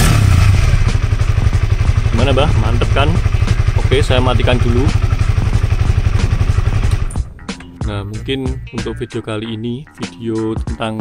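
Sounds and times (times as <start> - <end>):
motorcycle engine idling: 0.0 - 8.7.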